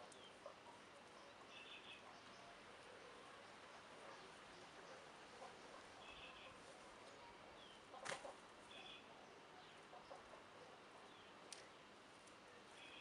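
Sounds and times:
faint bird chirps: 0.0 - 8.0, 8.6 - 11.3, 12.7 - 13.0.

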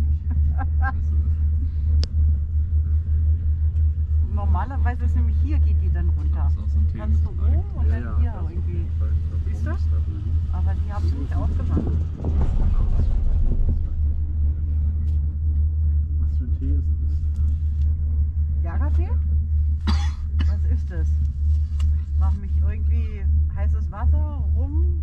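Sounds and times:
quiet voices: 0.0 - 15.2
wind rumble on microphone: 0.0 - 25.0.

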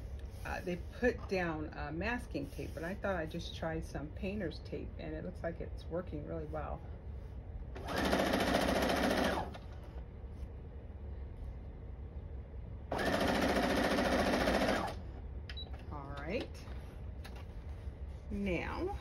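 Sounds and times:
sewing machine stitching: 7.8 - 9.6, 12.9 - 15.0.

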